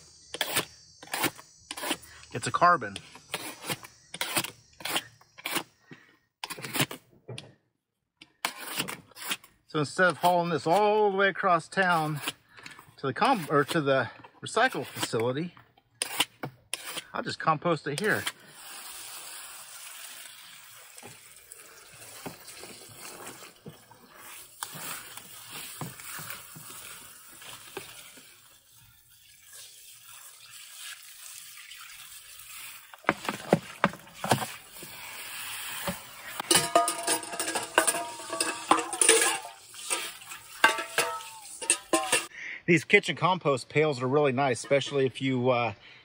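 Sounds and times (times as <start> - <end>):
hose spray splashing on compost: 18.0 - 36.4, 39.4 - 41.7.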